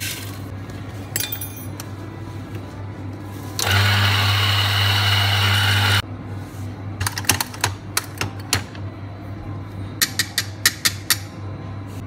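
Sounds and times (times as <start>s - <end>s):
coffee grinder running: 3.6s - 6.0s.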